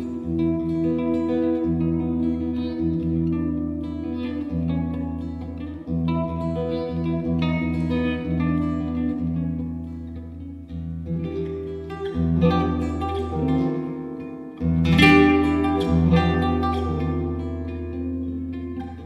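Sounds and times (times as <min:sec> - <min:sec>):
nylon-string guitar solo: 0:00.0 - 0:19.0.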